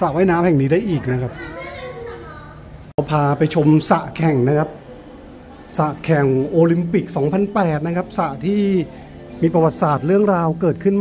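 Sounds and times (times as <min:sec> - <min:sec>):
children playing and calling out: 0:01.2 - 0:02.9.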